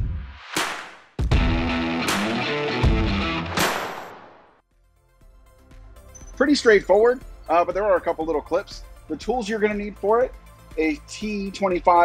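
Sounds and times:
electric guitar intro music: 1.2s - 3.6s.

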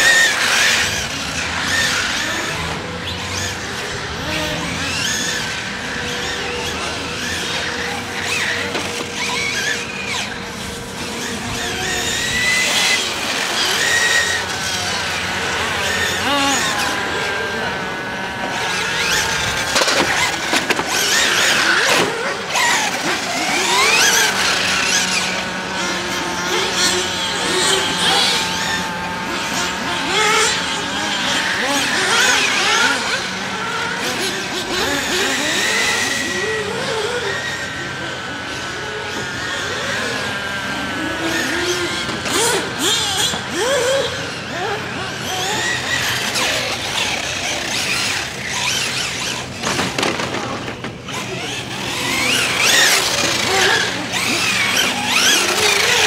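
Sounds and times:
electric rc car motor whining: 0.0s - 56.0s.

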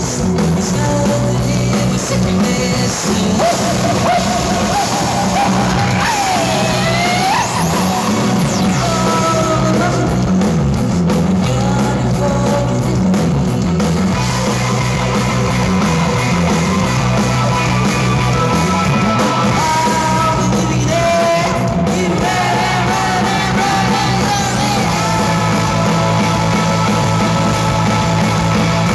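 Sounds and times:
bending lead guitar line: 0.0s - 28.9s
live rock band playing: 0.0s - 28.9s.

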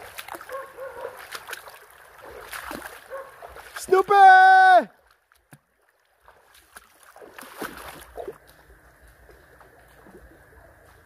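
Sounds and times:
creek water running over stones: 0.0s - 11.0s.

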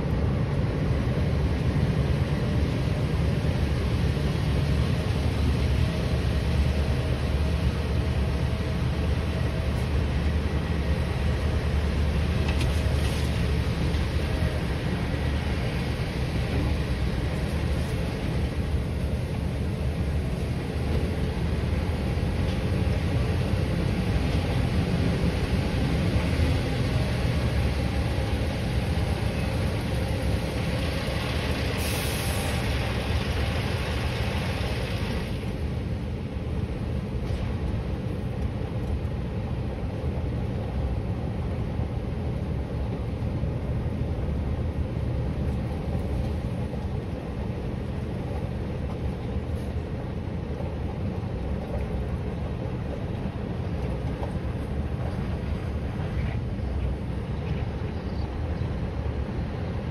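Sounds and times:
broad hiss: 31.1s - 35.3s.

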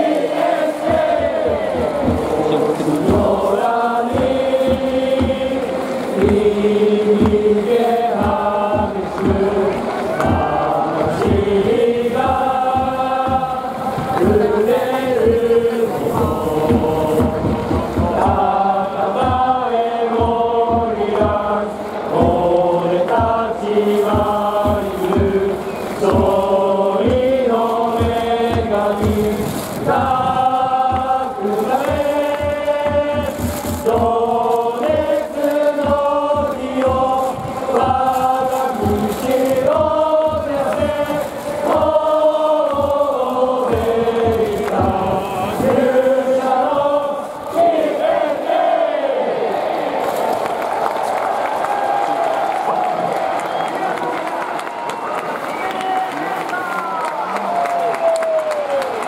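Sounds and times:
crowd cheering: 0.0s - 59.0s
stadium crowd singing in unison: 0.0s - 59.0s.

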